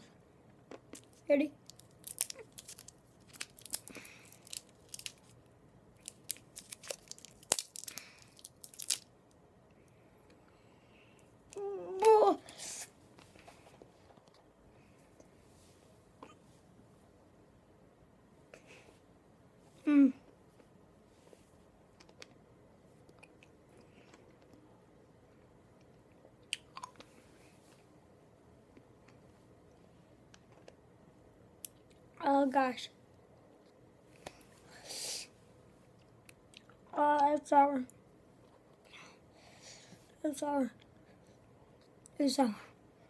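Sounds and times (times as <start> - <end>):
plastic candy wrapper crinkling: 1.0 - 9.4
mouth clicks and smacks chewing: 25.8 - 27.1.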